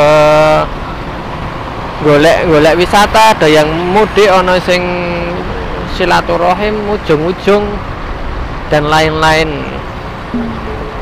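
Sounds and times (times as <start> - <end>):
road and wind noise: 0.0 - 11.0.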